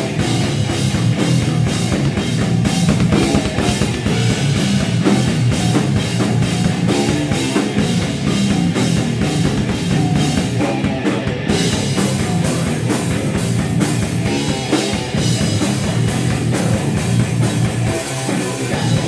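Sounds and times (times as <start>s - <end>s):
distorted electric guitar: 0.0s - 19.0s
fast drum beat: 0.0s - 19.0s.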